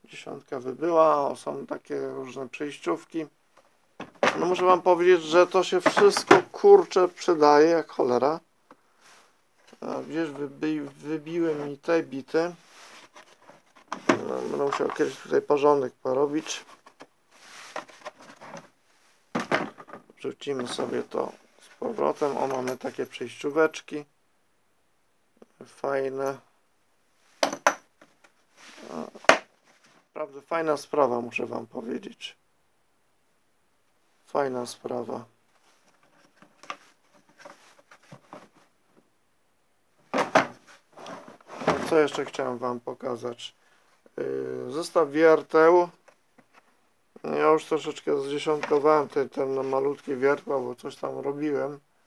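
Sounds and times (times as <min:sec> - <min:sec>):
plastic case clacking shut: 0:04.0 - 0:04.6, 0:05.8 - 0:06.6, 0:13.9 - 0:15.0, 0:19.4 - 0:20.0, 0:40.1 - 0:40.6
plastic trays and metal bits clattering: 0:05.7 - 0:06.6, 0:19.4 - 0:20.1.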